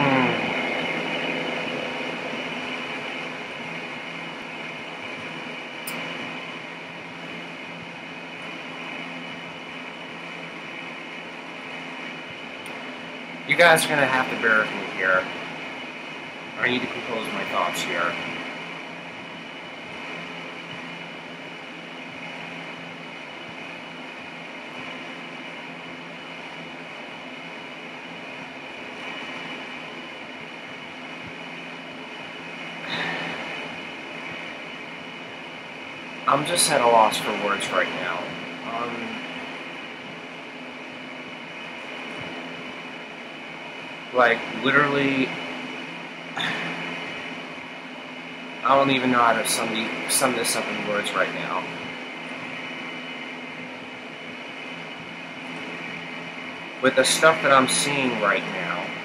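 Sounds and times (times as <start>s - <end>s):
faint constant hum: 0.0s - 59.0s
steady hiss: 0.0s - 59.0s.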